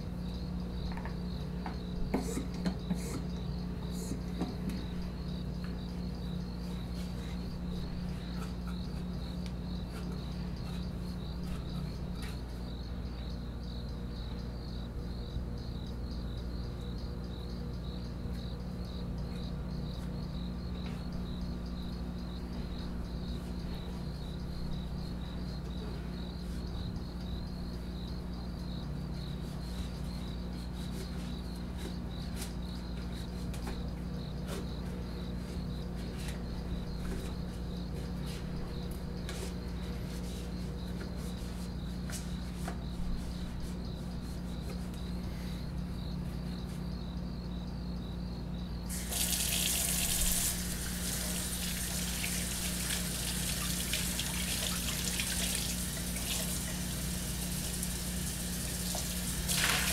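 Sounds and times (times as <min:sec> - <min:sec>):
crickets chirping: 0:00.0 - 0:59.9.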